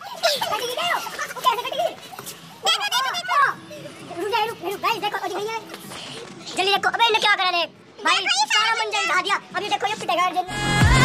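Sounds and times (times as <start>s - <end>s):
young voices shouting excitedly: 2.6s - 5.5s, 8.0s - 10.5s.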